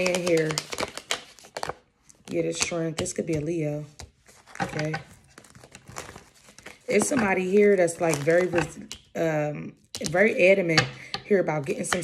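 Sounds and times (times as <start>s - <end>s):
cards being shuffled: 0.0s - 8.9s.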